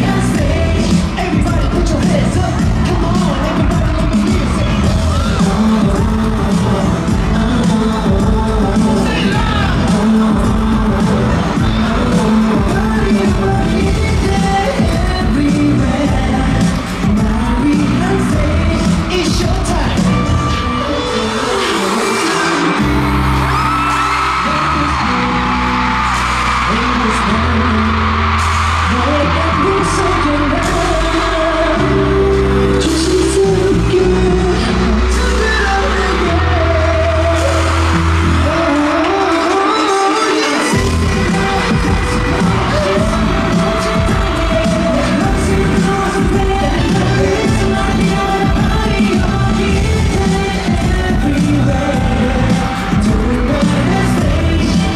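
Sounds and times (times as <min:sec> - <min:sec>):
deep bass line: 0:00.0 - 0:20.5, 0:22.8 - 0:39.2, 0:40.8 - 0:54.9
crowd whooping: 0:00.0 - 0:54.9
person singing: 0:00.0 - 0:54.9
pop concert music: 0:00.0 - 0:54.9.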